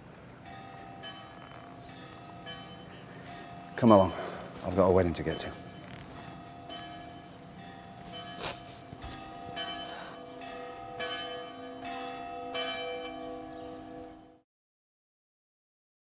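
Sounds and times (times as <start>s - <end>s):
large bells pealing: 0.0s - 14.4s.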